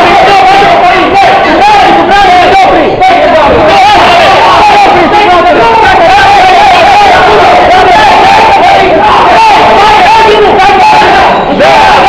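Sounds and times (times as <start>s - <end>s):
crowd of men yelling: 0.0s - 12.0s.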